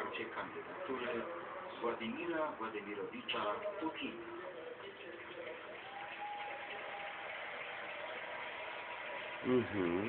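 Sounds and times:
television background hiss: 0.0s - 10.0s.

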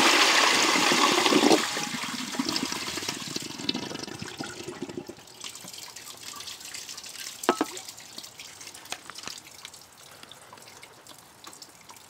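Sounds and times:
toilet flushing: 0.0s - 6.4s
water trickling and dripping: 4.4s - 12.0s.

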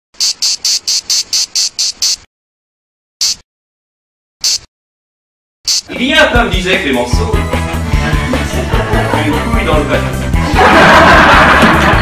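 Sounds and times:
high-pitched rasping chirps: 0.2s - 2.3s, 3.2s - 3.4s, 4.4s - 4.7s, 5.7s - 5.9s.

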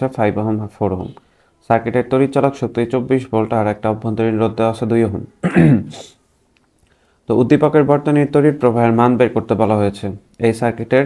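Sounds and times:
man speaking: 0.0s - 6.2s, 7.3s - 11.0s
throat clearing: 5.4s - 6.2s.

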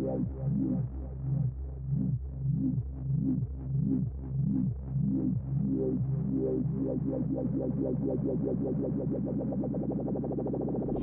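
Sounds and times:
held low bass: 10.8s - 11.0s.

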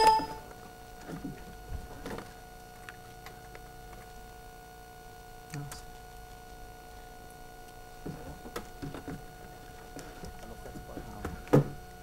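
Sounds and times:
ringing bell-like chime: 0.0s - 0.6s
faint steady hum: 0.0s - 12.0s.

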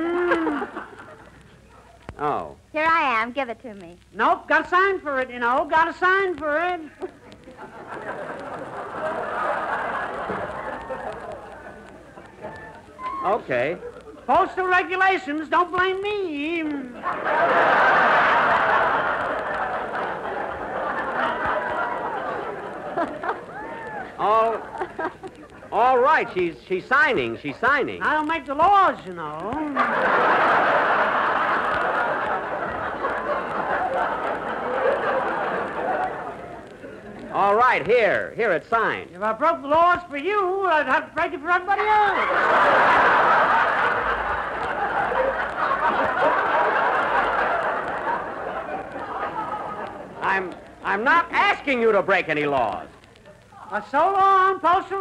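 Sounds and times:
studio audience laughing: 0.3s - 1.5s, 7.0s - 12.5s, 16.9s - 25.8s, 29.7s - 37.2s, 42.1s - 50.4s.

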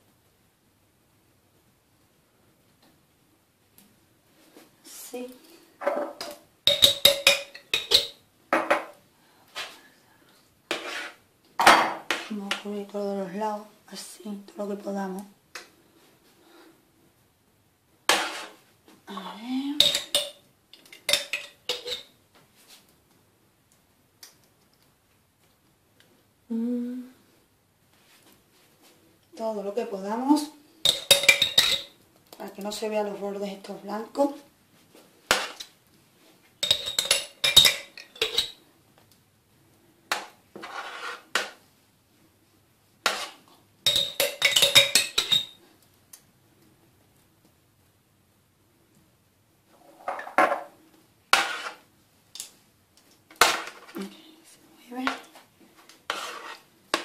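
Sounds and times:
spoon clinking against dish: 6.7s - 8.2s, 30.8s - 31.9s, 36.6s - 38.6s, 43.9s - 45.6s
metal spoon scraping jar: 10.7s - 11.2s, 56.1s - 57.0s.

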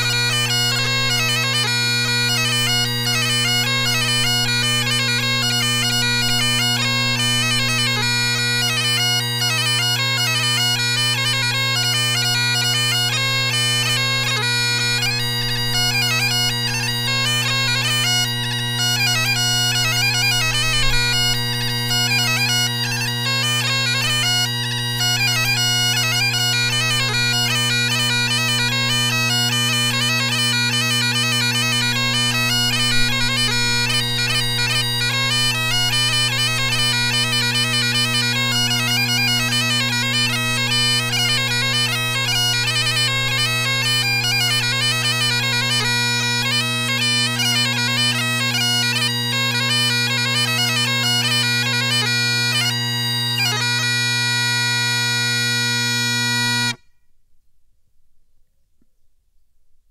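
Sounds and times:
bagpipe playing quick tune: 0.0s - 56.8s
bagpipe drones: 0.0s - 56.9s.

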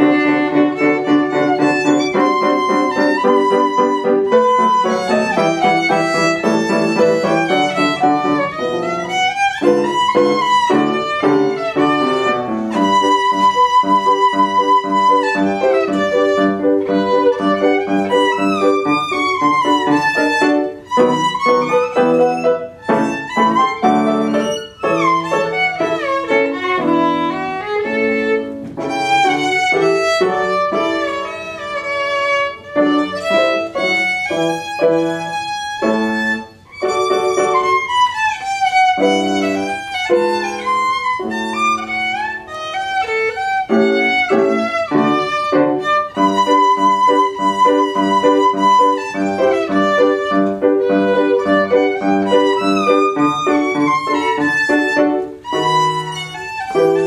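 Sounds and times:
piano accompaniment: 0.0s - 57.0s
violin melody: 0.0s - 57.0s.

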